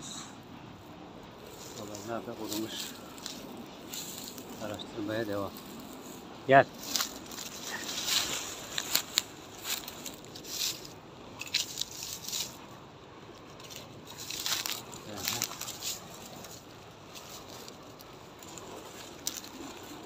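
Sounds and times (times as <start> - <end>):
footsteps through dry undergrowth: 1.3 - 12.8, 13.4 - 20.0.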